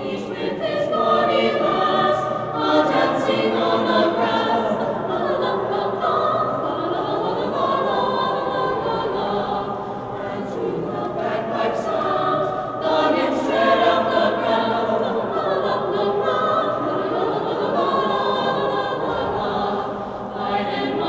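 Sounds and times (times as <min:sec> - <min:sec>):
choir singing in parts: 0:00.0 - 0:21.0.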